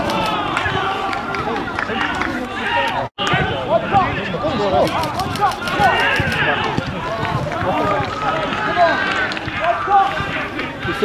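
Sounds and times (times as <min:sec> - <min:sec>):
players shouting and calling out: 0:00.0 - 0:11.0.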